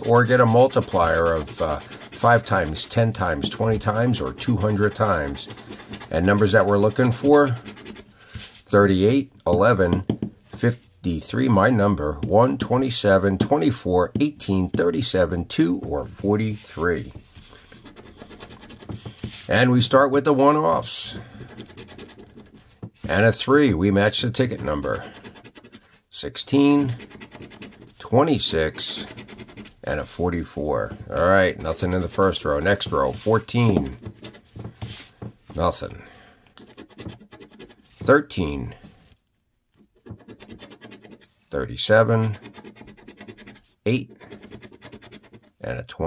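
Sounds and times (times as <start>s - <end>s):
coin scratching lottery ticket: 0.0s - 8.1s, 17.8s - 18.9s, 21.1s - 22.6s, 24.3s - 25.9s, 26.5s - 29.9s, 40.1s - 41.3s, 42.0s - 45.6s.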